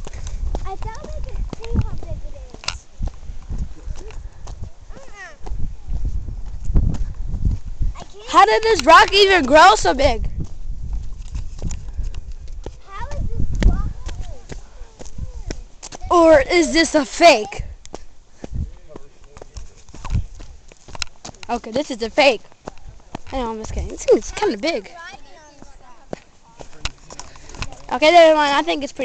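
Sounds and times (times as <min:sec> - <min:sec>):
footsteps on rock: 0:00.0 - 0:29.0.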